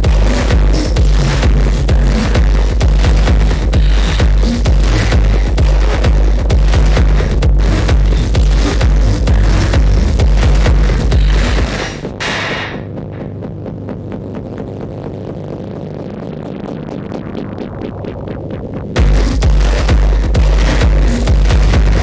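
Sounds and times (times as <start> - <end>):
industrial techno music: 0.0 - 22.0.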